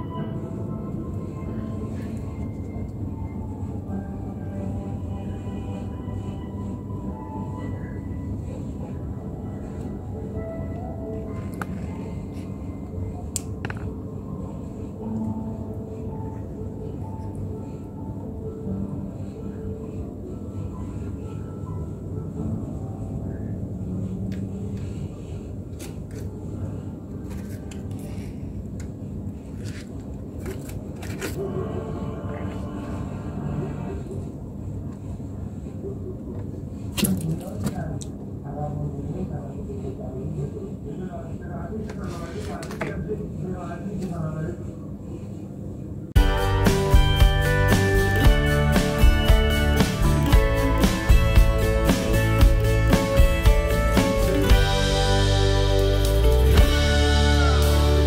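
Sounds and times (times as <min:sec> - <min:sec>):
faint background music: 0:00.0 - 0:58.0
low room rumble: 0:00.0 - 0:58.0.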